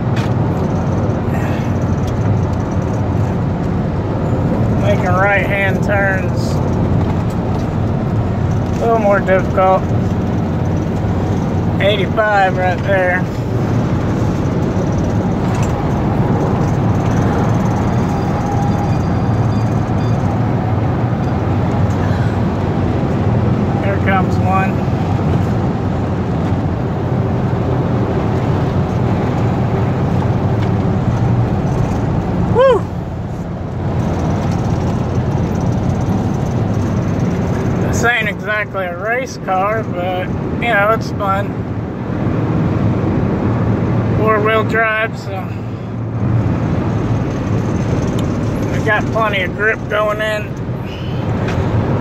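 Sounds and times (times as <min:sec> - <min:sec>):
car engine and road noise: 0:00.0 - 0:52.0.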